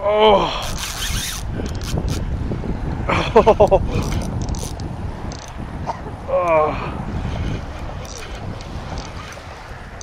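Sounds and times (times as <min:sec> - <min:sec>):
wind rumbling on microphone: 0:00.0 - 0:10.0
fishing reel clicking: 0:00.6 - 0:02.2, 0:04.0 - 0:05.6, 0:08.0 - 0:09.4.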